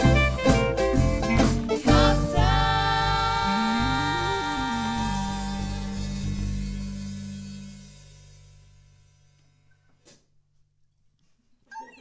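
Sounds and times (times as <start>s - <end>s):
acoustic swing band chord ringing: 0.0s - 9.0s.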